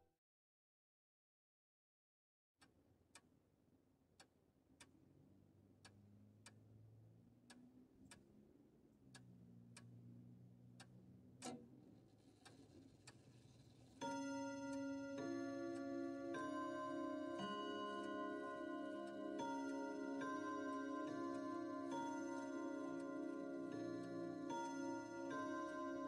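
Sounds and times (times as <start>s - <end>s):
bell-like clock chimes: 14.0s - 26.0s
clock ticking: 14.0s - 26.0s.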